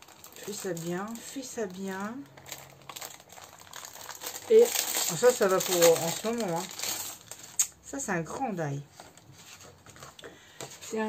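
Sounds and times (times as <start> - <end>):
packaging crinkling: 0.0 - 7.8.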